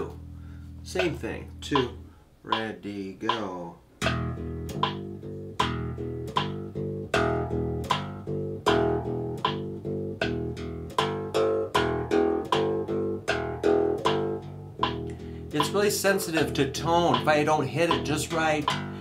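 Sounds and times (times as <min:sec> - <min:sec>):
electric bass plucked fingerstyle: 0:00.0 - 0:19.0.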